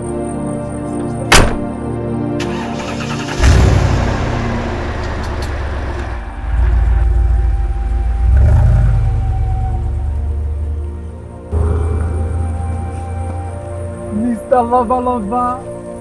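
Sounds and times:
background music: 0:00.0 - 0:16.0
car engine rumbling: 0:02.5 - 0:14.5.

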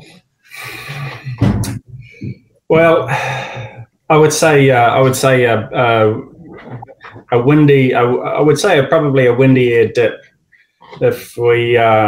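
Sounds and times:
man breathy humming exhale: 0:00.5 - 0:01.3.

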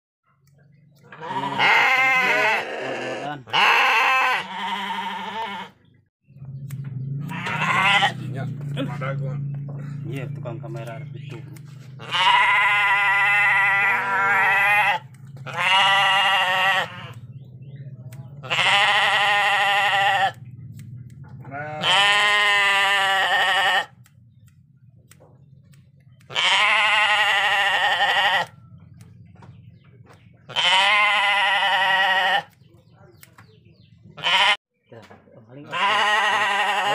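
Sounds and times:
sheep bleating: 0:01.1 - 0:05.8, 0:07.3 - 0:08.3, 0:12.0 - 0:17.2, 0:18.4 - 0:20.4, 0:21.4 - 0:24.0, 0:26.2 - 0:28.5, 0:30.5 - 0:32.6, 0:34.2 - 0:34.6, 0:35.6 - 0:36.9.

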